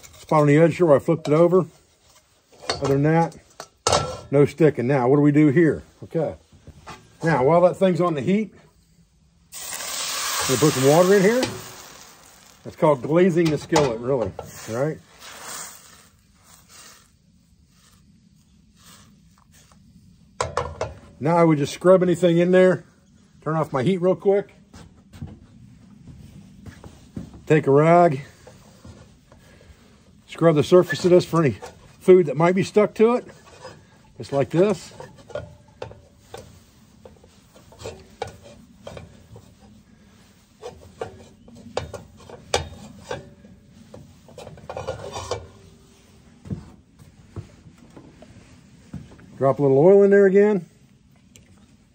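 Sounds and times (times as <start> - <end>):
water sizzling in a hot skillet: 9.5 - 13.4, 14.4 - 17.1
cloth rag scrubbing a steel skillet: 10.4 - 19.7, 30.3 - 46.3.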